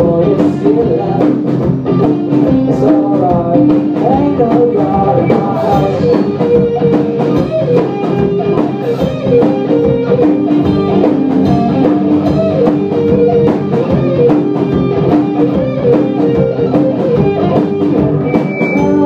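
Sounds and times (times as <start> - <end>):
live rock band: 0.0 - 19.0.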